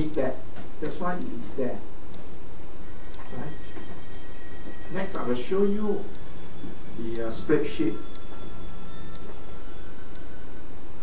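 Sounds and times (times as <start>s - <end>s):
man talking: 0.0s - 1.9s, 4.9s - 6.2s, 7.0s - 8.0s
faint high steady tone: 0.0s - 11.0s
low background rumble: 0.0s - 11.0s.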